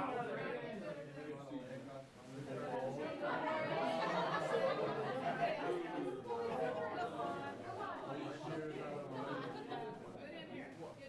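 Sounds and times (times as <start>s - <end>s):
group of people chattering: 0.0s - 11.0s.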